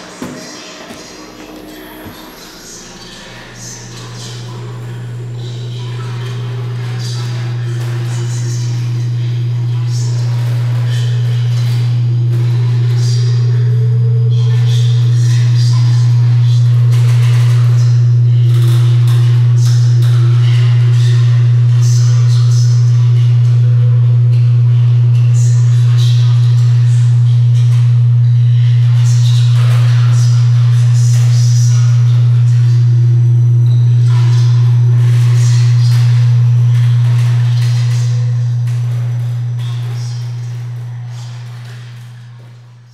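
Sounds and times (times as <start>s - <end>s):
shimmering ringing tones: 0.0s - 10.2s
faint wavering tones: 0.0s - 42.9s
loud low electronic drone: 0.0s - 42.9s.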